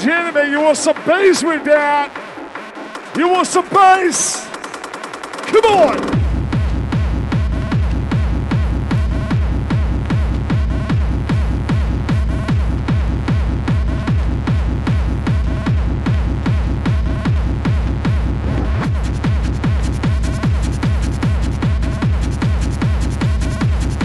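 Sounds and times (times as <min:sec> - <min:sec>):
hardstyle dance music: 0:00.0 - 0:24.0.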